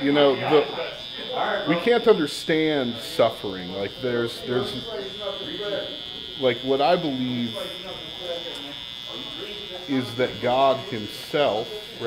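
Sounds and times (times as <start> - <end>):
hair trimmer buzzing: 0.0 - 12.0.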